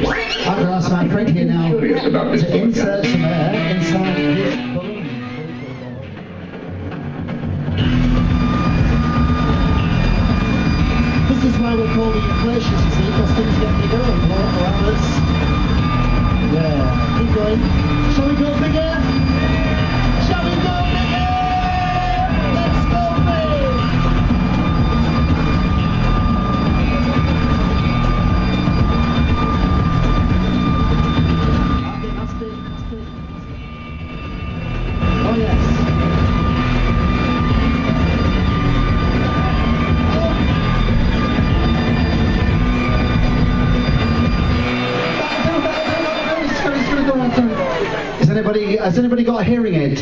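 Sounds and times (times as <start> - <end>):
air blower running: 6.8 - 48.7.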